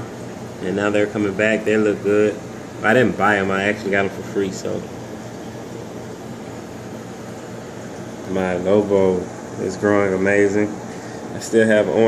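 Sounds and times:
low even hum: 0:00.0 - 0:12.0
steady hiss: 0:00.0 - 0:12.0.

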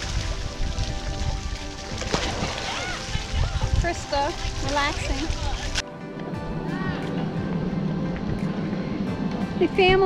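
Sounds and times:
motor vehicle rumbling: 0:05.3 - 0:10.0.

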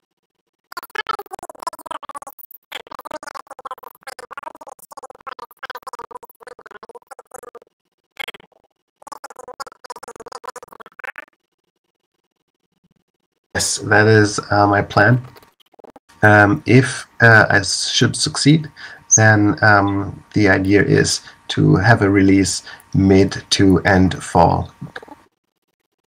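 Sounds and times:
person speaking: 0:13.6 - 0:15.4, 0:16.1 - 0:25.2.

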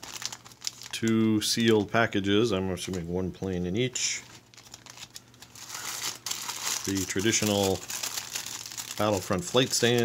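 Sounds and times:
plastic bags crinkling: 0:00.0 - 0:02.0, 0:04.0 - 0:10.0.

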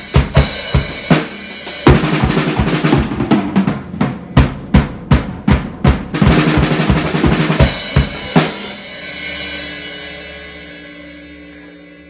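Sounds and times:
drum kit playing: 0:00.0 - 0:12.0.

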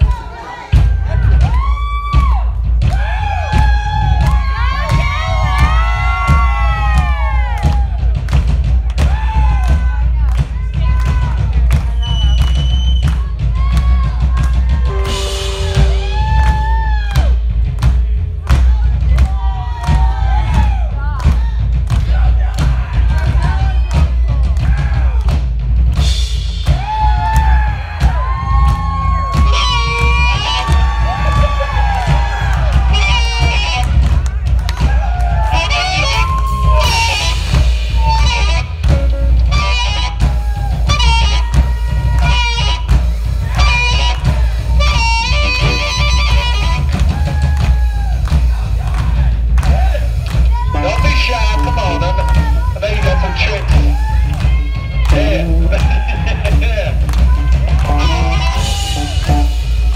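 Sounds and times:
crowd noise: 0:00.0 - 0:59.9
rock drumming on drum kit: 0:00.0 - 0:59.9
electric guitar notes bending: 0:14.8 - 0:16.4, 0:35.4 - 0:47.0, 0:54.7 - 0:59.9.

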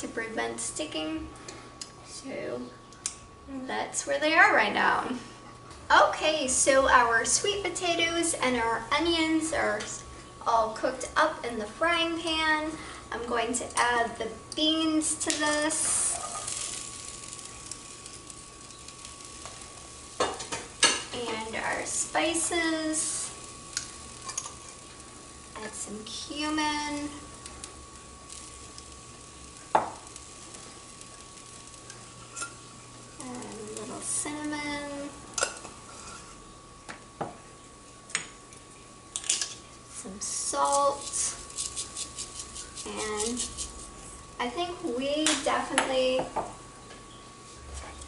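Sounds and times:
vegetables sizzling in a frying pan: 0:00.0 - 0:48.0.

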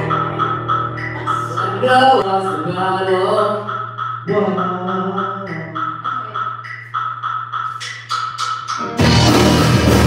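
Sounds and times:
high ping-like repeating note: 0:00.0 - 0:09.1
sharp percussion hits: 0:00.0 - 0:10.0.

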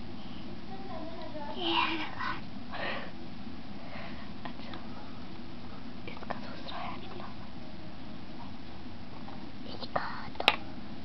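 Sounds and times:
person whispering: 0:06.1 - 0:07.4, 0:09.7 - 0:10.5.

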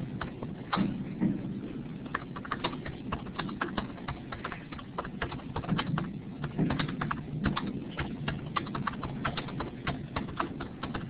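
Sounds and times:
keyboard typing: 0:00.0 - 0:01.0, 0:02.0 - 0:11.0.

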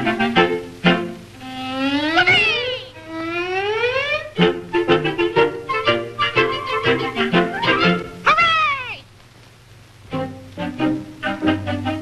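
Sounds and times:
cartoon meow-like cry: 0:08.2 - 0:09.1.

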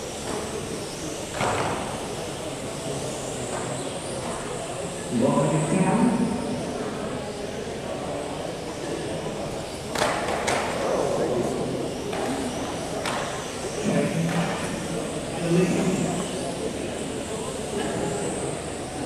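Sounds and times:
murmur of voices: 0:00.0 - 0:19.0.

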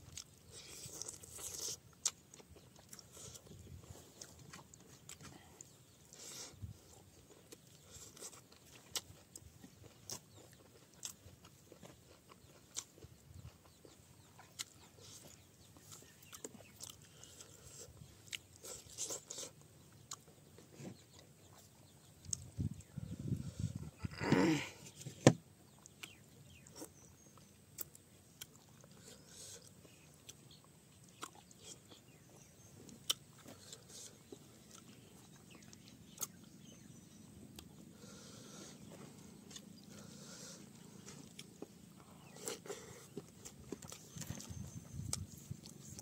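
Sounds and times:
chewing mouth clicks and smacks: 0:07.2 - 0:20.6, 0:21.2 - 0:22.9, 0:25.7 - 0:36.8, 0:41.0 - 0:46.0
low rough animal sounds: 0:22.8 - 0:25.1.

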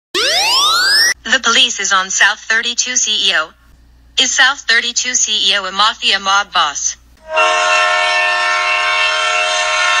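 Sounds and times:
loud horn-like chord: 0:07.2 - 0:10.0.

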